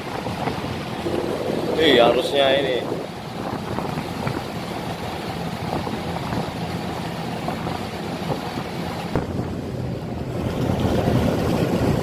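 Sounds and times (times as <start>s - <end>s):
wind and water rushing: 0.0s - 12.0s
wind buffeting microphone: 0.0s - 12.0s.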